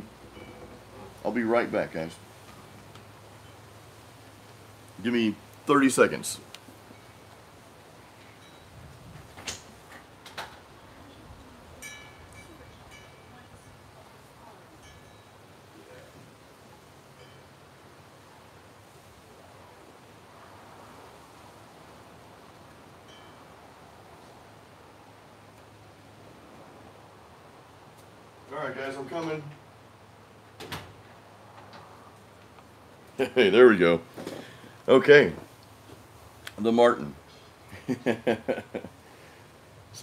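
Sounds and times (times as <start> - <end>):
faint steady hiss: 0.0 - 40.0.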